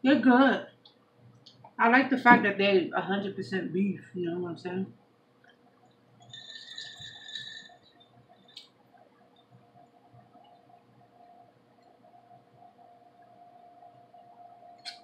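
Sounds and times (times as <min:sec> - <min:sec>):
faint steady hum: 0:00.0 - 0:15.0
straw squeaking against ice: 0:06.2 - 0:07.8.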